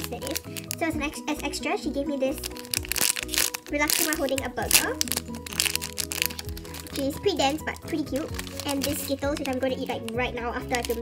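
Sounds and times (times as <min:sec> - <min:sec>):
background music with held notes: 0:00.0 - 0:11.0
plastic bag crinkling: 0:00.0 - 0:11.0.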